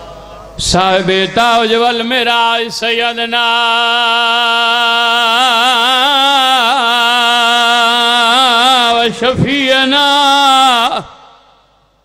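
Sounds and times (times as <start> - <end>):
man chanting with vibrato: 0.0 - 11.8.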